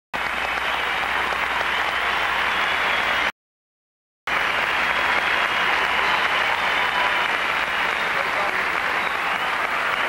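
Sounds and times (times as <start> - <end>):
crowd applauding: 0.2 - 3.3, 4.3 - 10.0.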